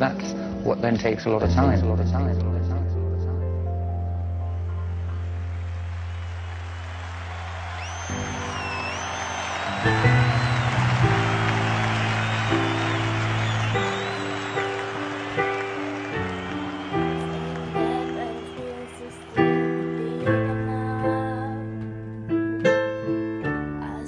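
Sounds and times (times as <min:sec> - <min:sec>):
piano playing lively chords: 0:00.0 - 0:24.0
people cheering and whooping: 0:05.0 - 0:21.6.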